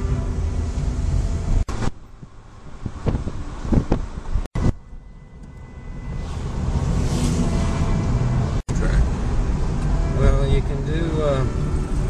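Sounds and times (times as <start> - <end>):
car road and engine noise: 0.0 - 12.0.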